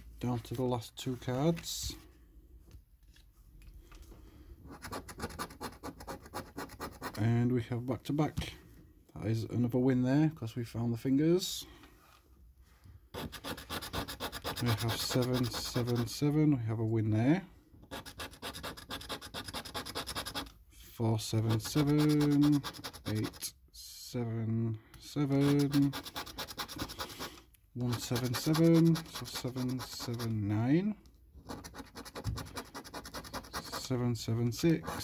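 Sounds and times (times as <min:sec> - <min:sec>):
coin scratching scratch card: 0:04.7 - 0:07.2, 0:13.2 - 0:16.1, 0:17.9 - 0:20.5, 0:21.5 - 0:23.4, 0:25.3 - 0:30.3, 0:31.4 - 0:33.9, 0:34.8 - 0:35.0.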